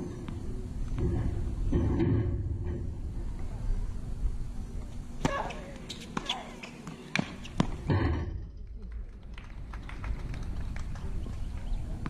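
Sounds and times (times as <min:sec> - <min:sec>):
racket hitting tennis ball: 0:05.2 - 0:07.9.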